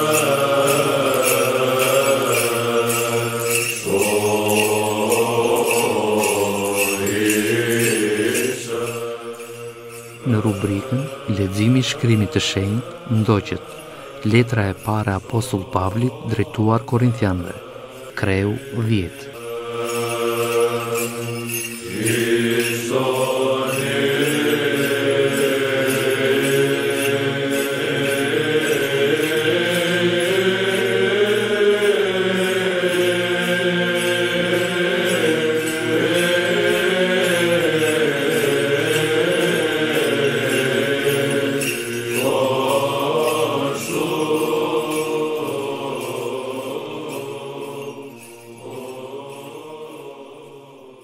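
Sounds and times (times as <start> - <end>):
slow sung chant melody: 0.0 - 51.0.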